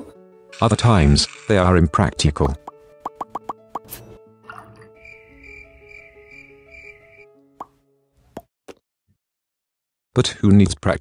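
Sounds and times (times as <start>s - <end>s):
light background music: 0.0s - 8.2s
short plop sound effects: 2.4s - 4.0s.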